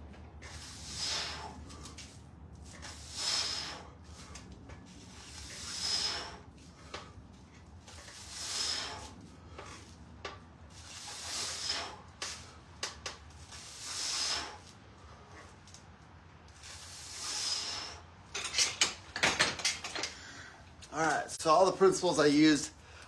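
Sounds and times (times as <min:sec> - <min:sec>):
person breathing hard: 0:00.8 - 0:02.1, 0:02.9 - 0:04.5.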